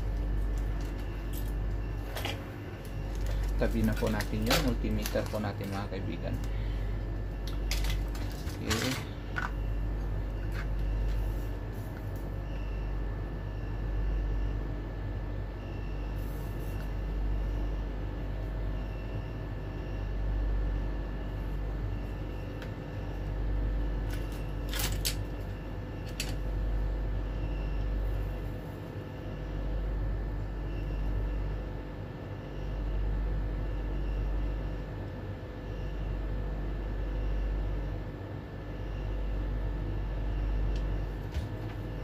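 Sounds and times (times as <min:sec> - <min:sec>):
steady low hum: 0:00.0 - 0:42.0
wire and tools scraping and clicking: 0:00.1 - 0:06.6, 0:24.1 - 0:26.4.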